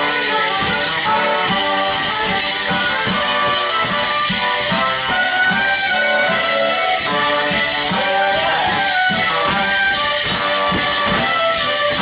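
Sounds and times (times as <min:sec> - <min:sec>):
folk band with fiddle: 0:00.0 - 0:12.0
leg bells jingling: 0:00.0 - 0:12.0.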